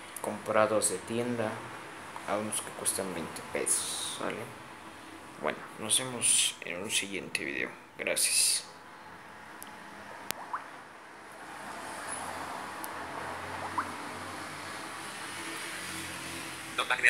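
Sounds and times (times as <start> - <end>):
low rumble with hiss: 0.0 - 8.9, 16.8 - 17.0.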